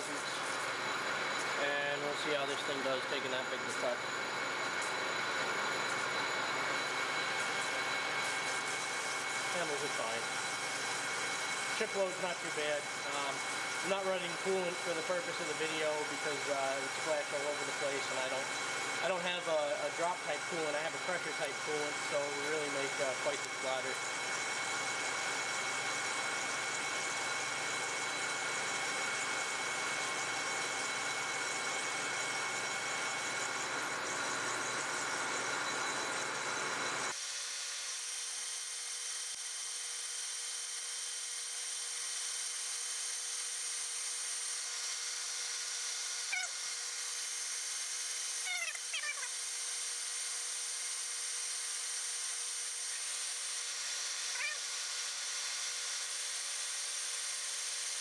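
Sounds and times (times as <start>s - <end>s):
lathe motor hum: 0.0s - 37.2s
metal lathe cutting steel: 0.0s - 37.2s.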